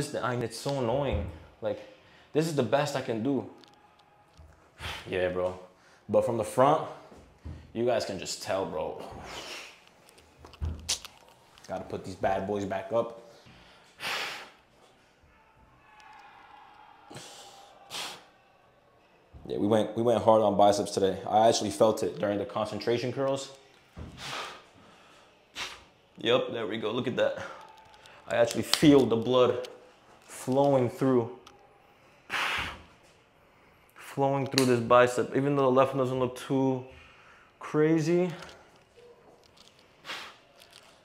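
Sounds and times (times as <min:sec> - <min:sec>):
man's sharp breaths: 0:04.7 - 0:06.1, 0:13.2 - 0:15.3, 0:17.0 - 0:18.4, 0:24.0 - 0:26.1, 0:32.0 - 0:34.0, 0:39.6 - 0:40.8.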